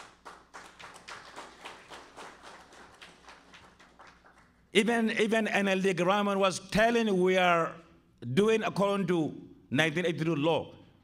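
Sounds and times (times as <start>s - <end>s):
sparse applause: 0.0s - 4.6s.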